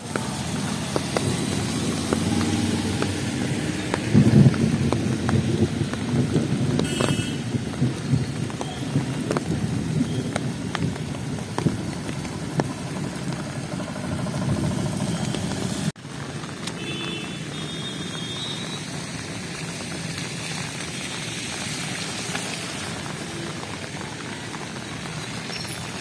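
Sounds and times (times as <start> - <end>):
rain falling on flooded road: 0.0 - 26.0
traffic rumbling through water: 0.0 - 26.0.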